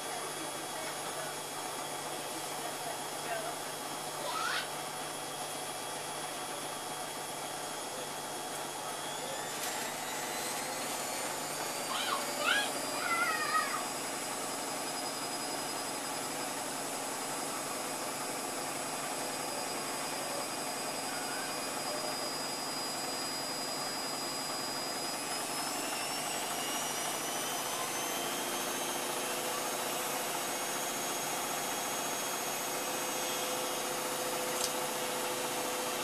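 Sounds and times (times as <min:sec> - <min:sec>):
motor whine: 0:00.0 - 0:36.0
washing machine spinning: 0:00.0 - 0:36.0.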